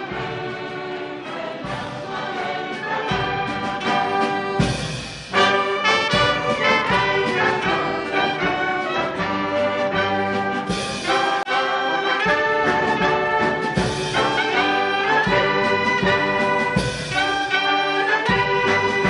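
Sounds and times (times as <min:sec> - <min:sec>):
military brass band playing an anthem: 0:00.0 - 0:19.0.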